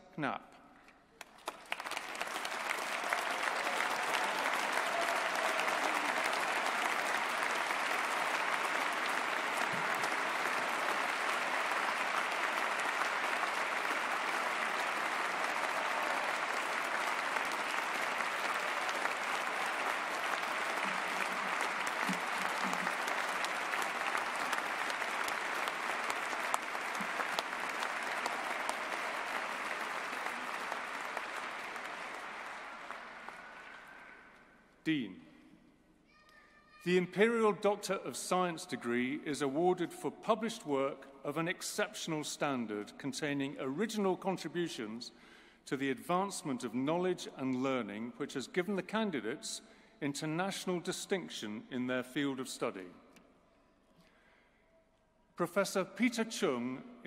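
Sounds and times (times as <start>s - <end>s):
audience applauding: 1.2s - 34.4s.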